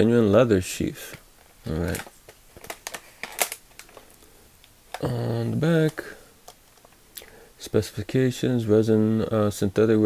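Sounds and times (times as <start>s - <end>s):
plastic packaging crackling: 1.6s - 4.2s.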